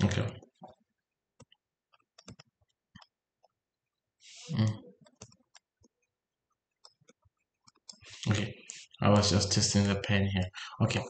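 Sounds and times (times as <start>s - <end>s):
stylus tapping on touchscreen: 1.4s - 3.6s
man humming: 4.5s - 4.8s
breath: 10.5s - 10.8s.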